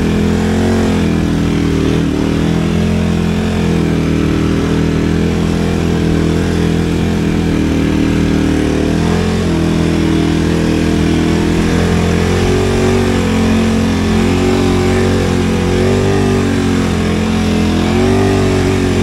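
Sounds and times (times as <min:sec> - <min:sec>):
motorcycle engine running: 0:00.0 - 0:19.0.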